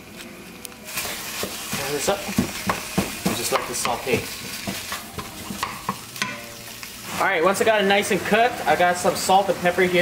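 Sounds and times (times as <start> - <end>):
meat sizzling in a frying pan: 0.8 - 10.0.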